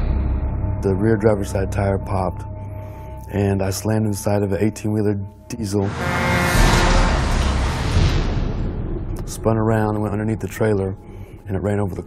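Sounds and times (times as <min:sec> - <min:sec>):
car crash: 0:05.9 - 0:09.0
deep rumble: 0:05.9 - 0:10.1.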